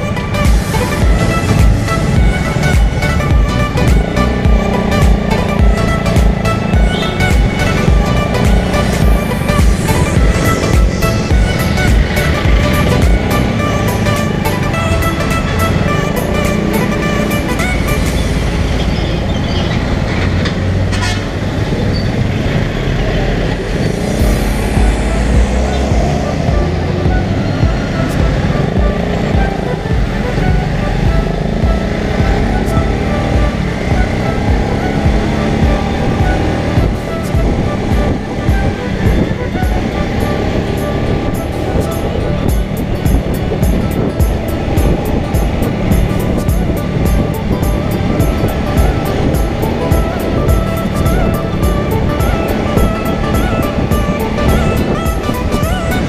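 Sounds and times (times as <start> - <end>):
background music: 0.0 - 21.5, 22.7 - 56.0
motorcycle engine and road rumble: 0.0 - 56.0
other vehicles: 0.0 - 56.0.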